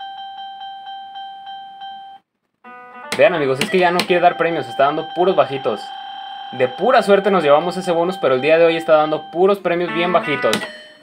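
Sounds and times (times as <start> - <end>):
chord-like electronic tone: 2.7 - 8.4
slot machine beeping: 2.7 - 11.0.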